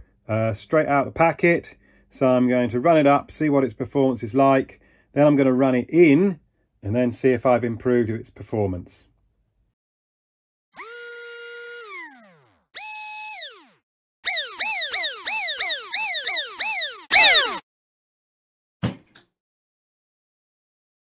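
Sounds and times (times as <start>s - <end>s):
electronic whines: 11.8s - 17.6s
short thud: 18.8s - 19.2s.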